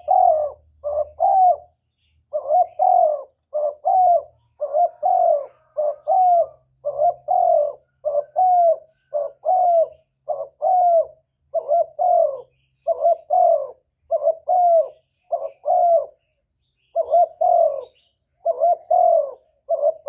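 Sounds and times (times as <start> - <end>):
dove cooing: 0.0 - 20.0.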